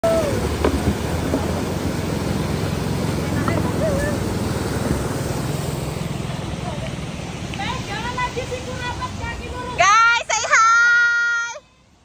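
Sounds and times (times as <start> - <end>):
water rushing over weir: 0.0 - 12.0.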